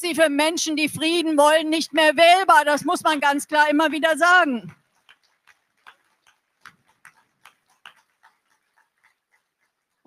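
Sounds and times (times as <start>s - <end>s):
faint hand claps: 4.7s - 10.0s.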